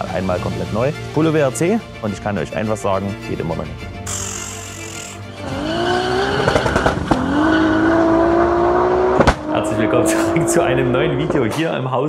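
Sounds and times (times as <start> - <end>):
car engine accelerating hard: 5.4 - 11.6.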